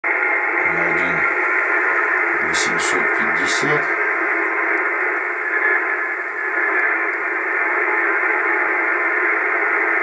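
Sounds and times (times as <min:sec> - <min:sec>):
radio receiver hiss: 0:00.1 - 0:10.0.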